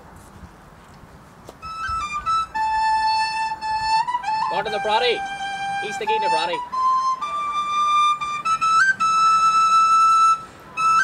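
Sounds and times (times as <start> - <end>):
solo flute playing slow tune: 1.6 - 11.0.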